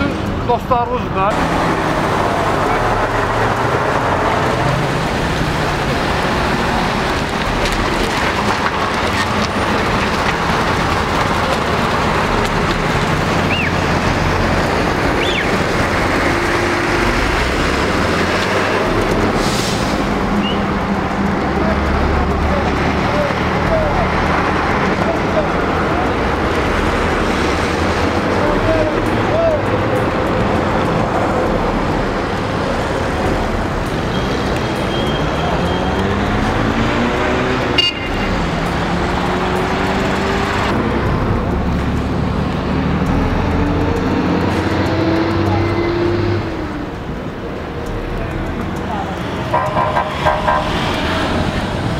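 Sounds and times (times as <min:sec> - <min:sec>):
road noise: 0:00.0 - 0:51.9
vehicle engine revving: 0:01.2 - 0:51.9
sharp knock: 0:49.5 - 0:51.2.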